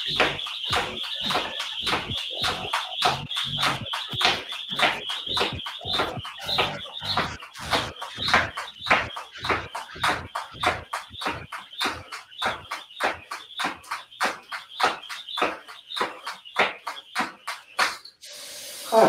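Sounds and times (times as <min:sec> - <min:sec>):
jump rope slapping floor: 0:00.0 - 0:18.1.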